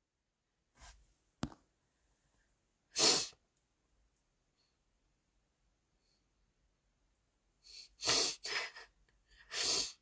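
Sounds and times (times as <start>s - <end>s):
person sneezing: 2.9s - 3.4s.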